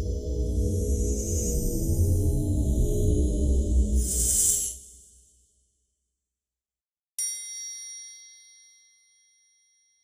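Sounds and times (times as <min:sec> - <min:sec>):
metallic chime ding: 0:07.2 - 0:10.0.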